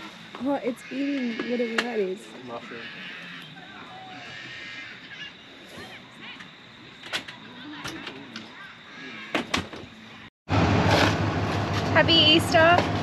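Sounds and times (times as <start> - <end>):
faint bird calls: 0.0 - 10.3.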